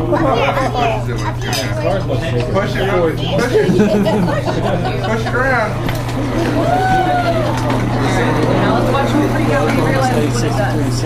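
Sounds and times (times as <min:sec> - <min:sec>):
children and adults talking: 0:00.0 - 0:11.0
steady low hum: 0:00.0 - 0:11.0.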